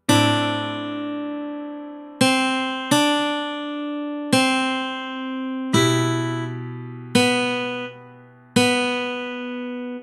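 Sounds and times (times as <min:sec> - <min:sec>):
guitar plucking slow melody: 0:00.0 - 0:10.0.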